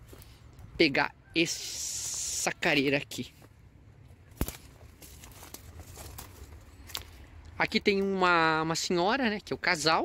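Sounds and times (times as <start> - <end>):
footsteps through grass: 1.6 - 8.1.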